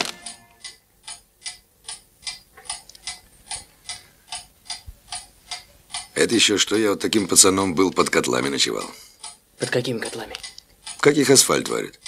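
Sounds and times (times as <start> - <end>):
clock ticking: 0.0 - 12.0.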